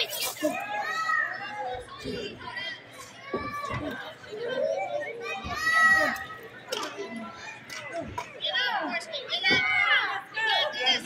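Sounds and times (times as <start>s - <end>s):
children shouting: 0.4s - 2.2s, 3.2s - 6.4s.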